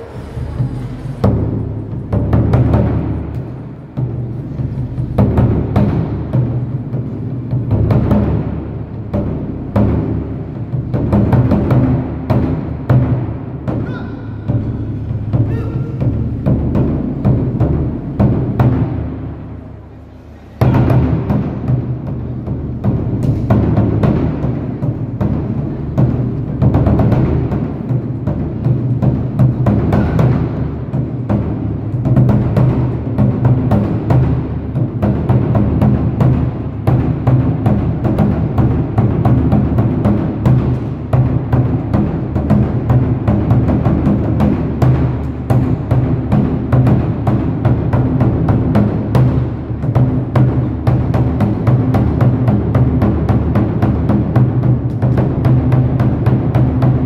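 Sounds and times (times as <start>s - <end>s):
war drum ensemble booming: 0.0s - 19.8s, 20.6s - 57.0s.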